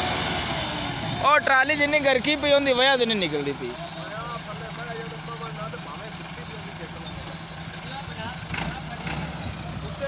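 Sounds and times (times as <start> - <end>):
tractor diesel engine idling: 0.0 - 10.0.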